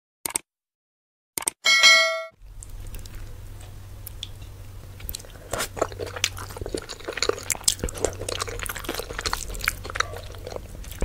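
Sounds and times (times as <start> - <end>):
bright bell ding: 1.7 - 2.4
faint low room hum: 1.7 - 11.0.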